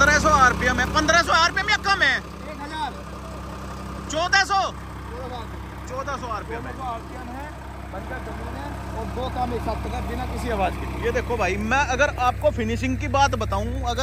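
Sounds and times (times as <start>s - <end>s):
tractor diesel engine under load: 0.0s - 14.0s.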